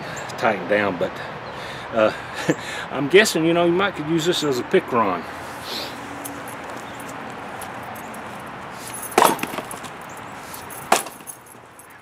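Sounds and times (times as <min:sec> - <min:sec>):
axe blows splitting wood: 0:09.2 - 0:09.9, 0:10.9 - 0:11.3.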